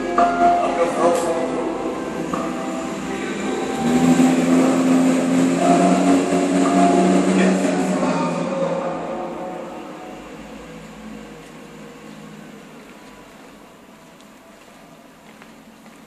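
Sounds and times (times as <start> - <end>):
car engine pulling away: 0.0 - 16.0.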